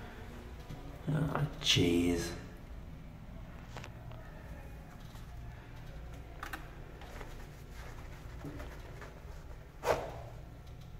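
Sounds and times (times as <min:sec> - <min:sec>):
low room hum: 0:00.0 - 0:10.9.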